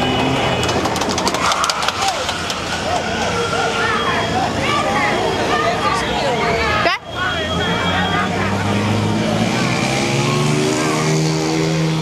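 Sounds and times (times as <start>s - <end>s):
street hum: 0.0s - 12.0s
people calling out: 1.2s - 9.1s.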